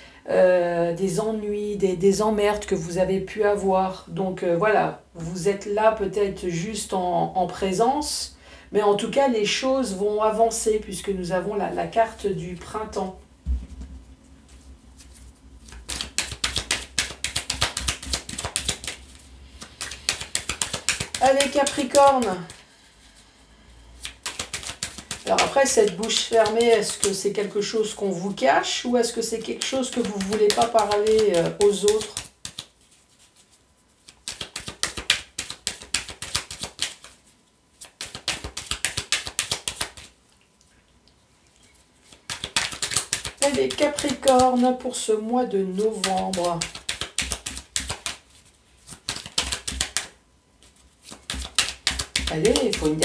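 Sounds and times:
cards being shuffled: 14.5s - 22.6s, 24.0s - 27.3s, 29.2s - 37.2s, 37.8s - 40.1s, 42.1s - 44.8s, 45.7s - 53.0s.

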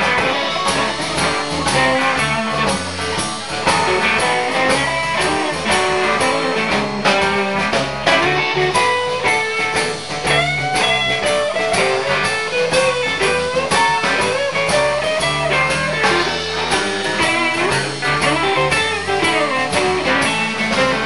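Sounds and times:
drums and bass shuffle beat: 0.0s - 21.0s
electric guitar solo: 0.0s - 21.0s.

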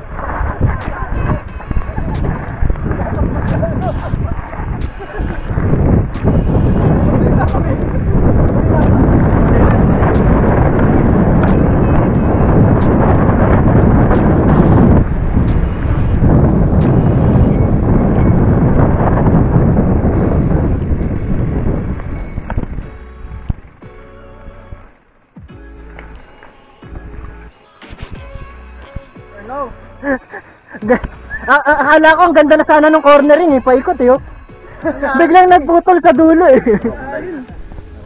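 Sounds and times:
tyres rolling on dirt trail: 0.0s - 14.8s
wind buffeting microphone: 0.0s - 24.0s.

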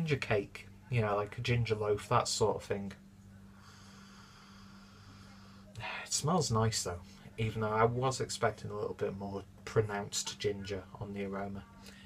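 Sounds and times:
electrical hum: 0.0s - 12.0s
faint hiss: 0.0s - 12.0s.

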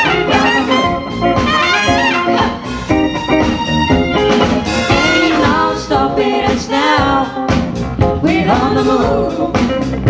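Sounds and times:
pop band playing: 0.0s - 10.0s
women singing: 4.9s - 10.0s.

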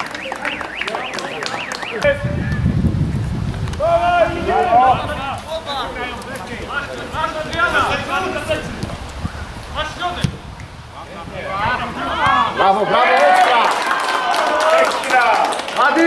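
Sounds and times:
wind rumble on microphone: 2.0s - 12.6s
men shouting: 3.8s - 8.8s, 11.1s - 16.0s.

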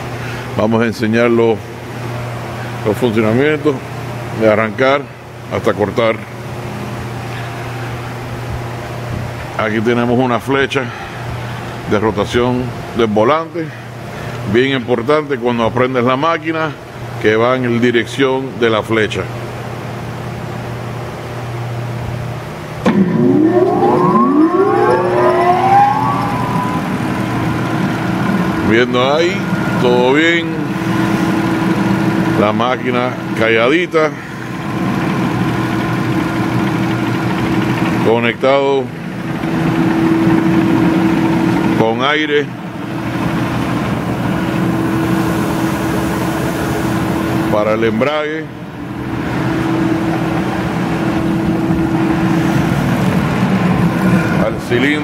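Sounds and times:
plate shear idling hum: 21.7s - 38.0s
electric motor whine: 22.8s - 28.5s.

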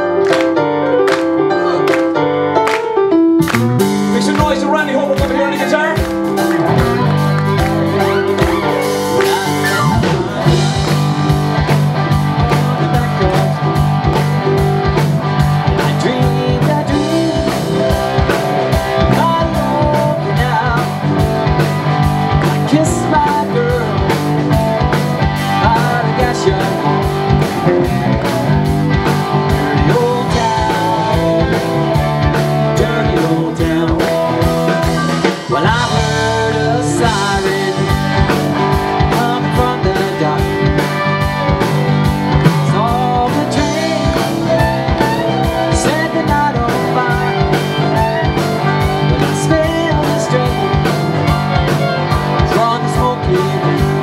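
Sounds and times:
live rock band playing: 0.0s - 54.0s.

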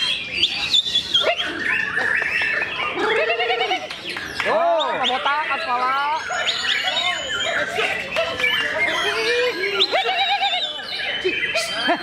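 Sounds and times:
songbird whistling and chirping: 0.0s - 12.0s.

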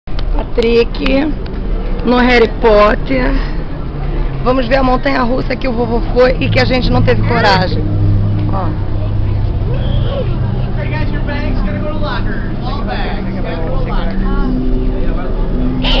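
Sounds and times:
steady low hum: 0.1s - 16.0s.

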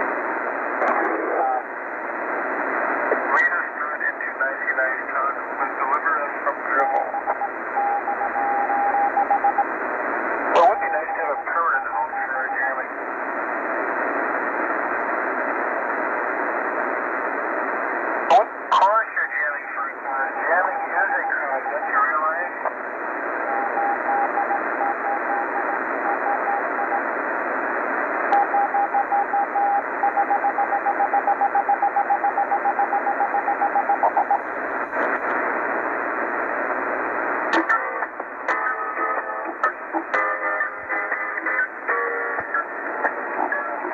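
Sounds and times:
radio static hiss: 0.0s - 43.9s
garbled radio voice: 0.8s - 1.7s, 3.2s - 7.4s, 10.6s - 13.0s, 18.3s - 22.7s, 33.9s - 35.3s.

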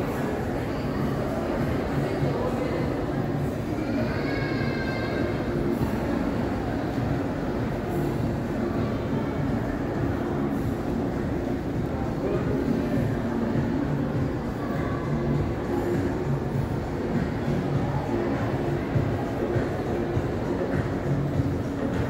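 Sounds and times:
indistinct echoing voices: 0.0s - 22.0s.

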